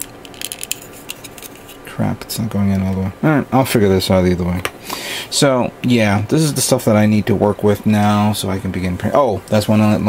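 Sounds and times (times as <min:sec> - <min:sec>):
plastic parts clicking: 0:00.0 - 0:01.8.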